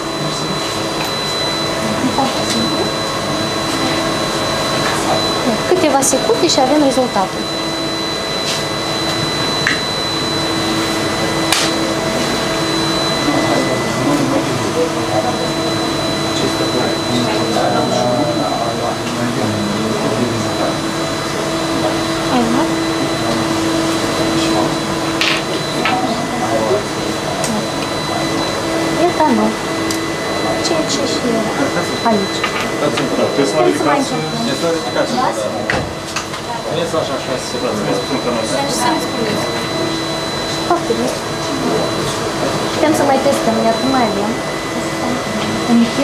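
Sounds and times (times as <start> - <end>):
cooling fans whirring hum: 0.0 - 46.0
faint high whine: 0.0 - 46.0.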